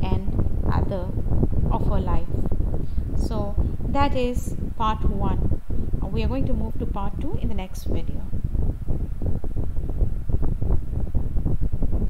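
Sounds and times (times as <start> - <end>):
low rumbling microphone noise: 0.0 - 12.0.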